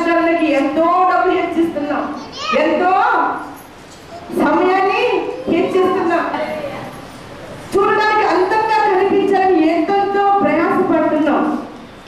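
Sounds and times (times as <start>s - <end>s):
woman preaching through a microphone: 0.0s - 3.6s, 4.2s - 11.8s.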